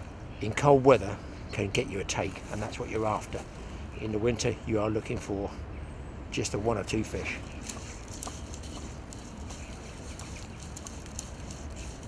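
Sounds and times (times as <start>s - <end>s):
fly line swishing through guides: 7.5s - 12.0s.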